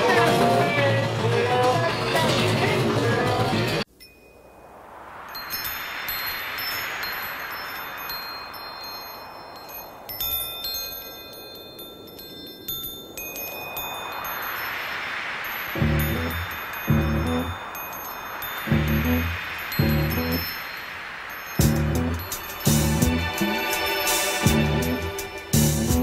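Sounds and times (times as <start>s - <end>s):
wind chimes ringing: 3.8s - 26.0s
soft wash of noise: 3.9s - 25.6s
deep bass beat: 15.8s - 17.6s, 18.7s - 20.4s, 21.6s - 23.4s, 24.5s - 26.0s.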